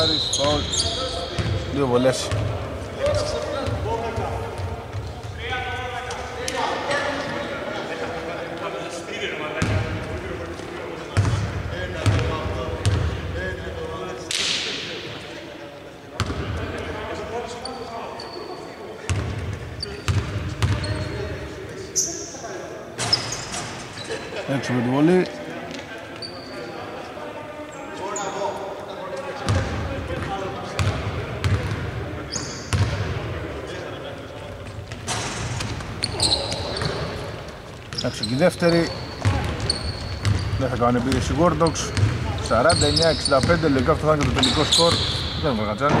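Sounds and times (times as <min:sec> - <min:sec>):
short high squeaks: 0:00.0 - 0:01.4, 0:23.0 - 0:24.2, 0:37.9 - 0:40.6
players calling out: 0:35.9 - 0:46.0.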